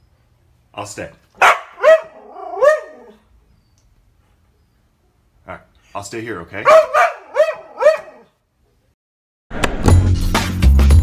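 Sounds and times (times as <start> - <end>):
husky calling: 1.4 - 3.2, 6.6 - 8.3.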